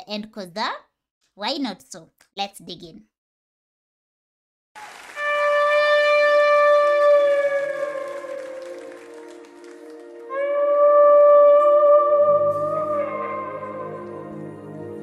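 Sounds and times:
electric guitar sustained notes: 5.3s - 15.0s.

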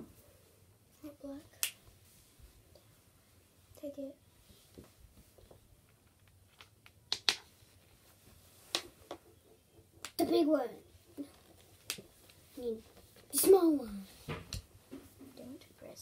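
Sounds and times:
child's voice: 1.0s - 1.5s, 3.8s - 4.2s, 10.2s - 11.4s, 12.6s - 14.2s, 15.3s - 16.0s.

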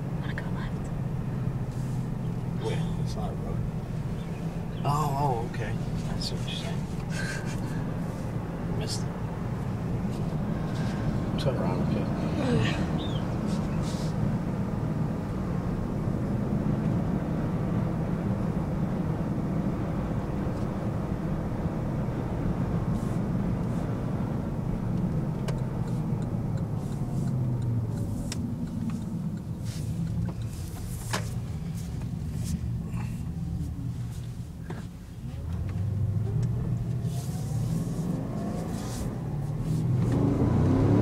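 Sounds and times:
car engine and road noise: 0.0s - 41.0s.

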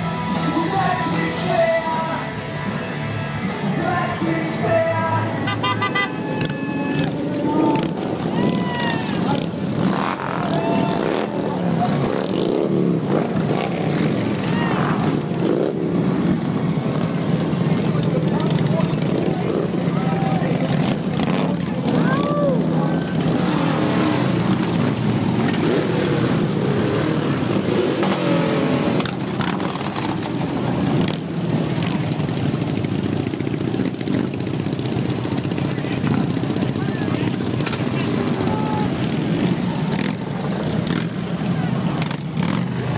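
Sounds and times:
crowd talking and calling out: 0.0s - 42.9s
motorcycle engines idling: 0.0s - 42.9s.

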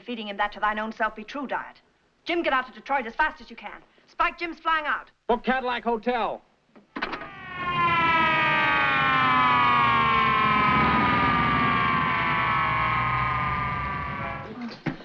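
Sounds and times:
siren wailing: 7.1s - 14.5s.

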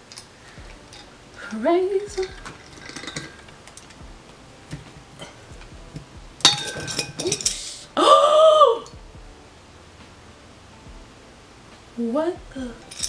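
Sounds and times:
metallic rattling and scraping: 0.0s - 7.9s, 8.8s - 13.0s.

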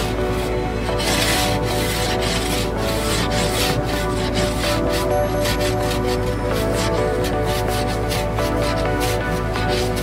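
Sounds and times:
background music: 0.0s - 10.0s
ice scraper on windscreen: 0.0s - 10.0s.

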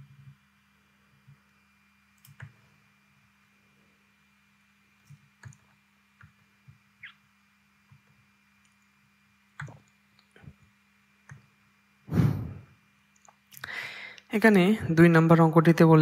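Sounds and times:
faint electrical hum: 0.0s - 16.0s
computer mouse clicks: 2.1s - 2.6s, 5.0s - 6.8s, 9.6s - 11.5s.

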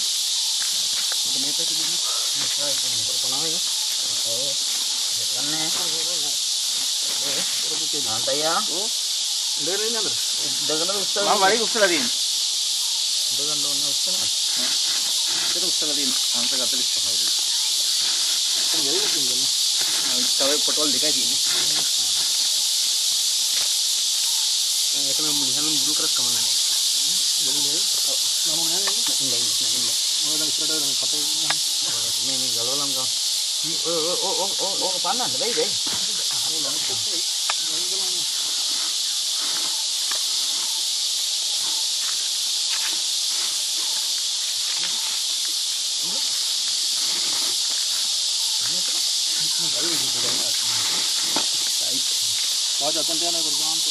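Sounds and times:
high-pitched insect chorus: 0.0s - 53.9s.

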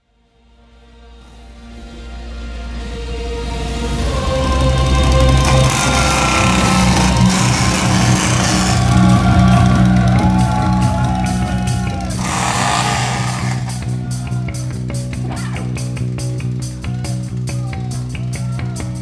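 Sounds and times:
low droning hum: 4.2s - 13.9s
electric guitar sliding tones: 4.8s - 11.1s, 12.0s - 13.9s.

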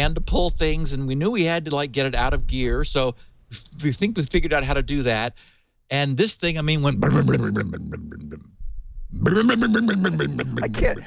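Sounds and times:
man laughing: 7.1s - 8.4s, 9.5s - 11.0s.

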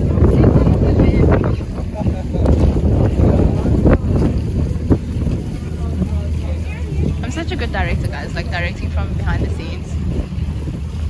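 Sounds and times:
voices: 0.0s - 11.0s
wind buffeting microphone: 0.0s - 11.0s.

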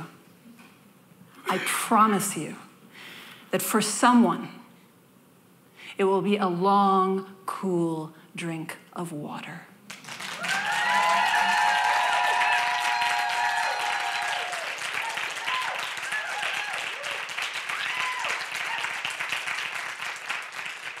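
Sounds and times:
audience applauding: 9.9s - 21.0s
high whoops: 10.3s - 19.1s.

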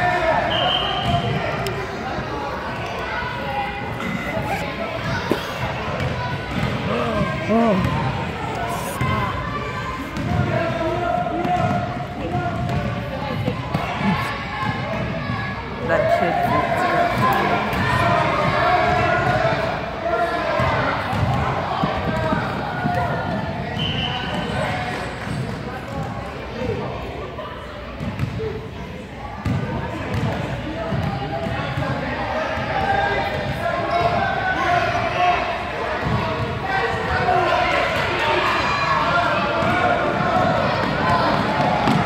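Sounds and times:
chatter of people: 0.0s - 42.0s
basketball bouncing on hardwood: 12.6s - 12.9s.

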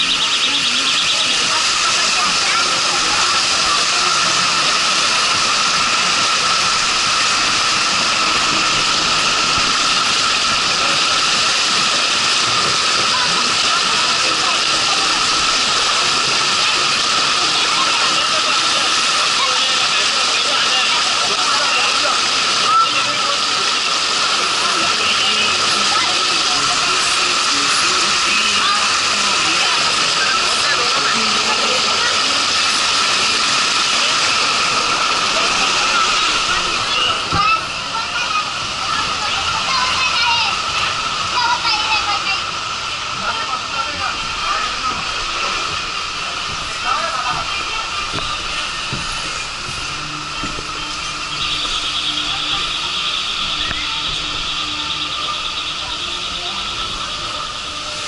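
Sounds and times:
water rushing down flume: 0.0s - 58.0s.

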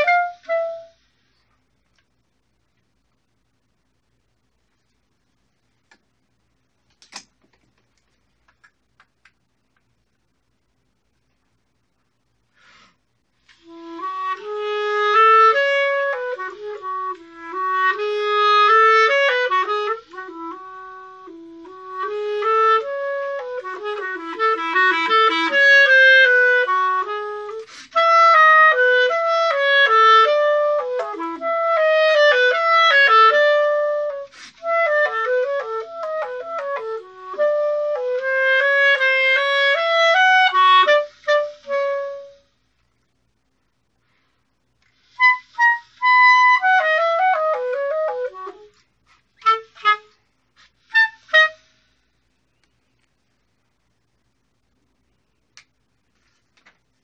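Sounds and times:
solo clarinet playing: 0.0s - 1.1s, 13.5s - 42.6s, 45.0s - 51.8s.

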